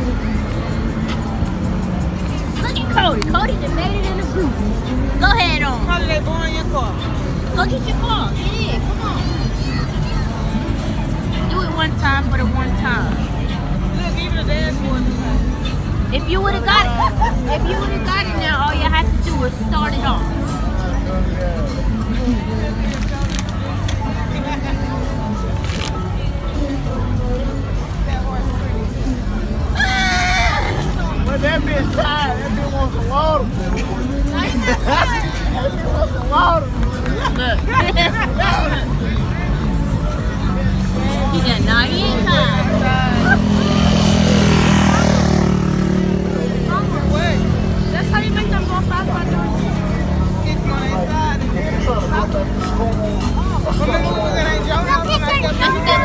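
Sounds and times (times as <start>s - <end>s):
bass-heavy music: 0.0s - 56.0s
car engines rumbling: 0.0s - 56.0s.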